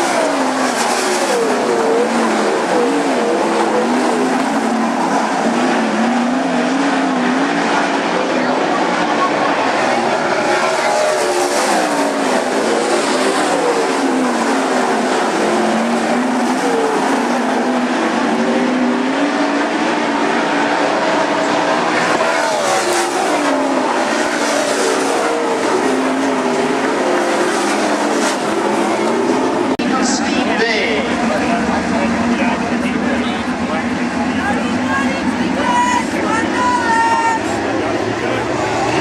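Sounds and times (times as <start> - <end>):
race car engines racing: 0.0 - 39.0.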